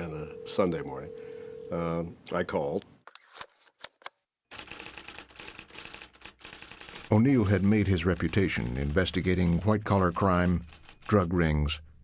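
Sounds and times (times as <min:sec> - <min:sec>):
typewriter keystrokes clattering: 0:04.5 - 0:09.2, 0:09.8 - 0:11.3.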